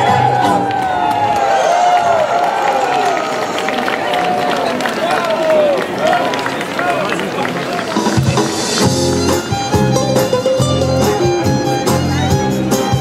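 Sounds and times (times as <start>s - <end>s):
audience clapping and cheering: 0.0s - 9.3s.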